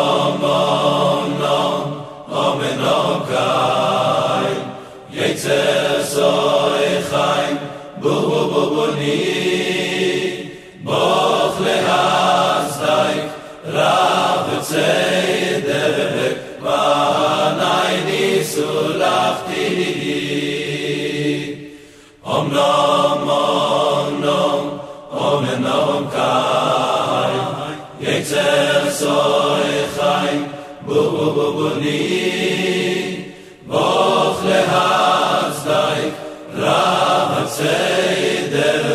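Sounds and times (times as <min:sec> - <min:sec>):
choir singing: 0:00.0 - 0:38.9.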